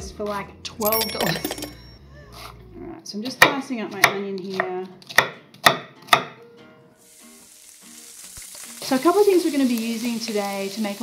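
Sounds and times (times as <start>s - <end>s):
knife chopping onion on board: 3.2s - 6.4s
onion sizzling in hot oil: 7.0s - 11.0s.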